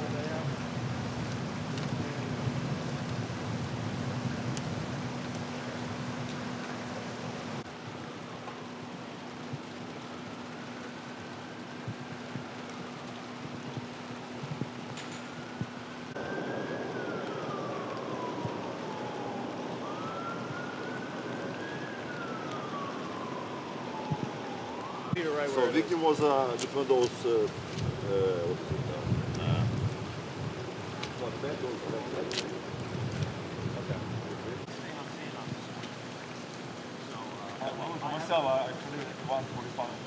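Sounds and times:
faint siren wailing: 0.0 - 40.0
wet street background noise: 0.0 - 40.0.

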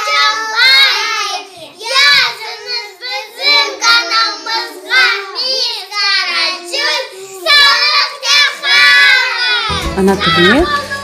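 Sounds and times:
girls singing together: 0.0 - 9.8.

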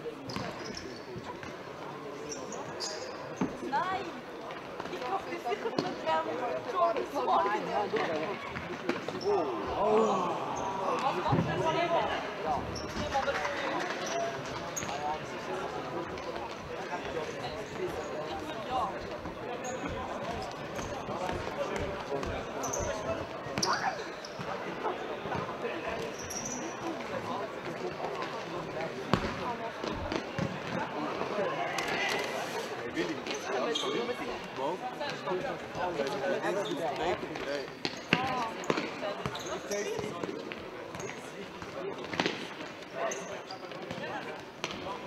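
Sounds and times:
spectators chatting: 0.0 - 45.0
shoes squeaking on court: 0.2 - 1.6, 2.2 - 3.7, 12.6 - 15.0, 22.3 - 24.7, 25.3 - 27.1, 32.5 - 34.3, 36.5 - 44.9.

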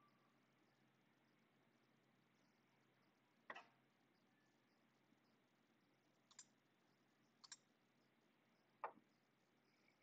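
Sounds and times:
keyboard and mouse clicks: 6.3 - 6.5, 7.4 - 7.7.

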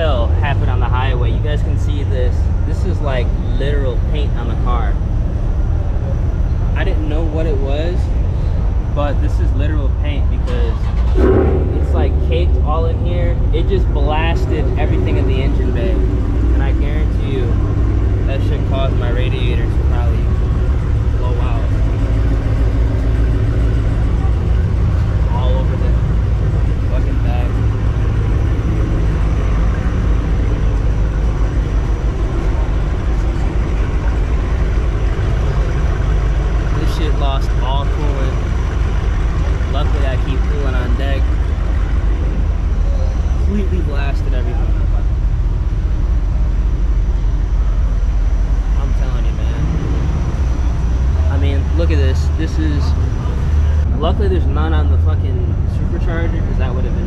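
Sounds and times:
people talking: 0.0 - 5.0, 6.7 - 8.2, 8.8 - 17.6, 18.2 - 22.1, 23.7 - 27.8, 32.3 - 35.8, 36.7 - 38.5, 39.5 - 41.3, 42.7 - 45.2, 48.7 - 49.7, 51.2 - 57.0
steady low rumble: 0.0 - 57.0.

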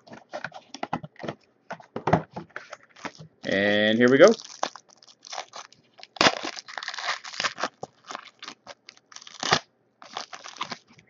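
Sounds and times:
wrapper tearing and crinkling: 4.0 - 11.0.

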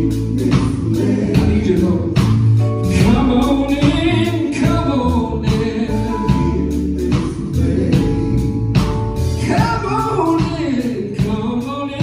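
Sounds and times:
band with steady beat: 0.0 - 12.0
group singing gospel song: 0.0 - 12.0.

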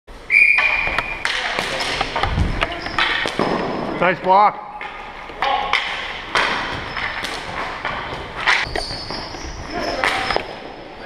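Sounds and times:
sneakers squeaking on floor: 0.3 - 4.0, 4.7 - 11.0.

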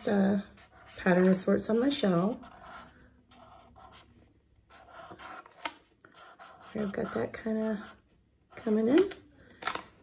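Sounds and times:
marker strokes on paper: 0.0 - 8.7.

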